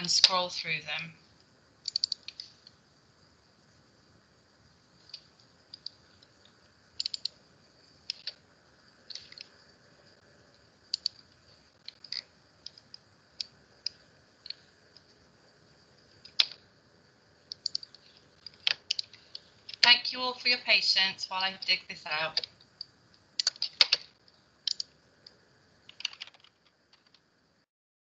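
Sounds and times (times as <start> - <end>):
mouse and keyboard clicks: 1.8 - 2.8, 7.0 - 7.4, 8.0 - 8.4, 10.9 - 14.6, 16.2 - 16.6, 17.5 - 19.9, 22.4 - 24.9, 25.8 - 27.2.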